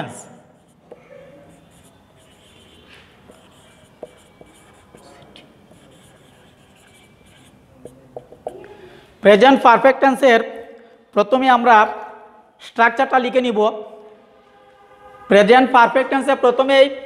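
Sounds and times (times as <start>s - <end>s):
marker pen on whiteboard: 0.1s - 9.0s.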